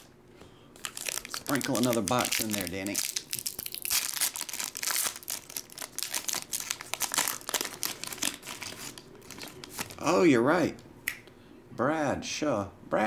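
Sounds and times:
foil wrapper crinkling and tearing: 0.8s - 10.1s.

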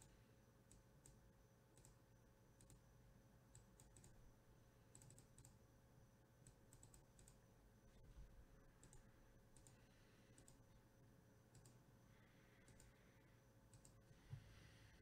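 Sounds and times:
computer mouse clicks: 0.0s - 1.2s, 1.8s - 2.0s, 2.6s - 2.8s, 3.5s - 4.2s, 4.9s - 5.6s, 6.4s - 7.4s, 8.8s - 10.7s, 11.5s - 11.8s, 12.6s - 13.0s, 13.7s - 14.4s.

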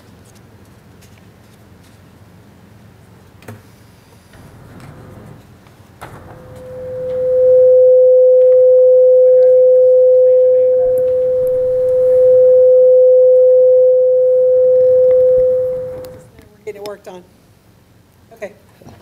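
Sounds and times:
steady feedback tone: 4.4s - 16.3s.

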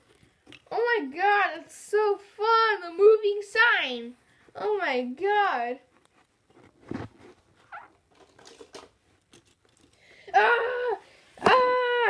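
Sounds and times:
plastic toys on carpet: 0.0s - 1.0s, 3.6s - 10.4s
light clicks and rustles: 5.9s - 10.1s.

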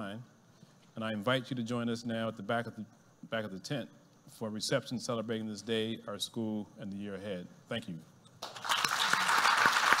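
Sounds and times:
audience applauding: 8.4s - 10.0s.

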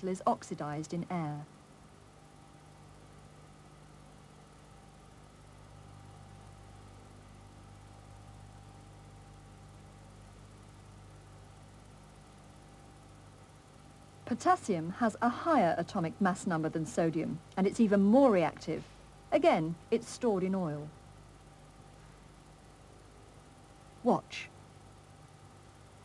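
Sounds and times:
faint steady hum and hiss: 0.0s - 26.0s.

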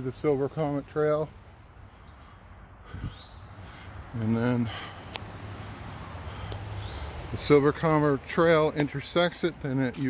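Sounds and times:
insect chorus: 0.0s - 10.0s.

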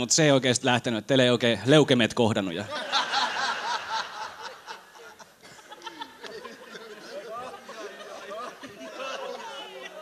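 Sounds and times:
audience laughter: 2.7s - 10.0s.

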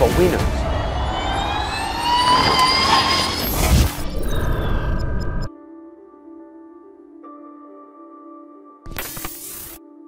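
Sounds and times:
electric race car whine: 0.5s - 4.0s.

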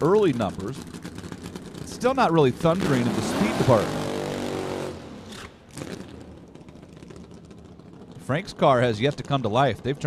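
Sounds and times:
drag racing car engine: 0.0s - 10.0s.

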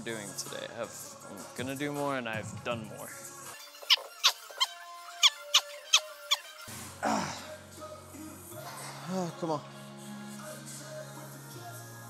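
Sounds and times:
short high squeaks: 3.6s - 6.7s.

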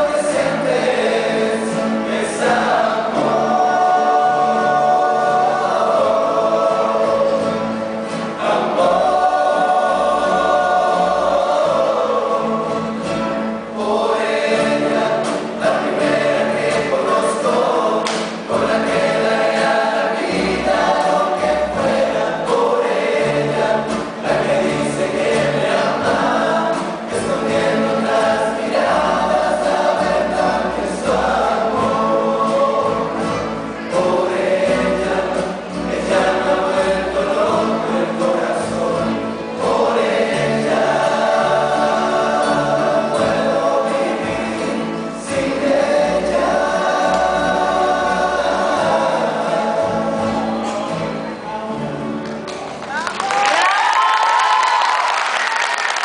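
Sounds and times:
male choir singing in harmony: 0.0s - 52.3s
double bass: 0.0s - 52.8s
strummed acoustic guitars: 0.0s - 53.1s.

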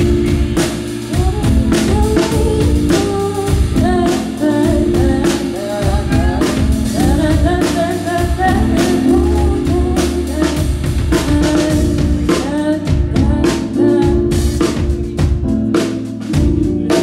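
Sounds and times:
bass line: 0.0s - 17.0s
drum kit beat: 0.0s - 17.0s
keyboard chords: 0.0s - 17.0s
person singing lead vocal: 1.1s - 15.3s, 16.3s - 17.0s.

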